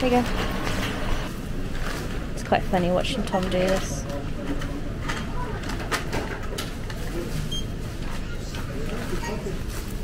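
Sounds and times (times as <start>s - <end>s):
supermarket hum: 0.0s - 10.0s
clicks and rustles of items: 1.7s - 10.0s
background chatter: 3.9s - 10.0s.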